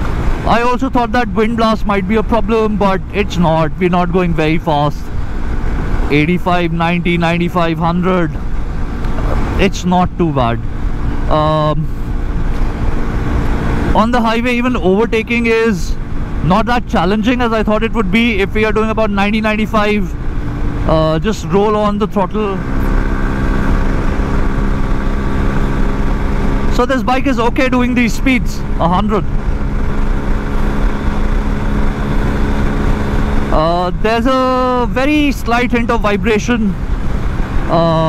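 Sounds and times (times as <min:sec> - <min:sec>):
motorcycle engine cruising: 0:00.0 - 0:38.0.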